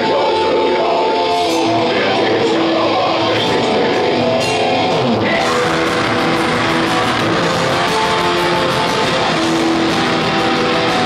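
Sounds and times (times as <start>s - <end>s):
black metal band playing live: 0.0s - 11.0s
distorted electric guitars: 0.0s - 11.0s.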